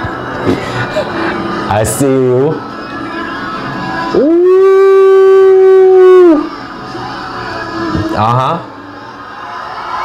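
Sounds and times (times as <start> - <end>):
quiet concert music: 0.0 - 10.0
man exclaiming ooh: 4.2 - 6.5.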